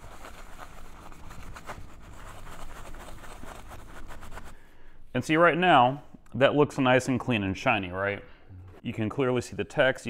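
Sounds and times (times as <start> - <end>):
paper towel scrubbing metal: 0.0 - 5.4.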